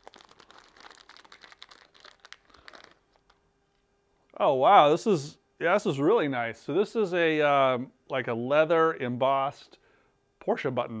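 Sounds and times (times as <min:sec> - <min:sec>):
plastic bag crinkling: 0:00.0 - 0:03.8.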